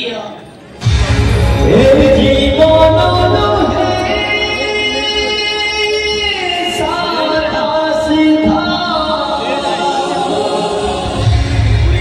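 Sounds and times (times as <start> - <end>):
voices singing long held notes: 1.7 - 12.0.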